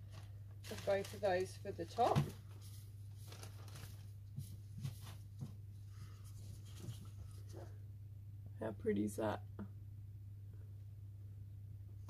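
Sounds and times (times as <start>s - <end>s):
dried petals rustling: 0.0s - 5.4s
steady low hum: 0.0s - 12.0s.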